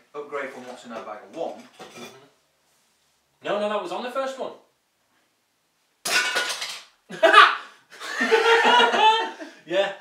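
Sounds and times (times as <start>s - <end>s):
men laughing heartily: 7.1s - 9.6s.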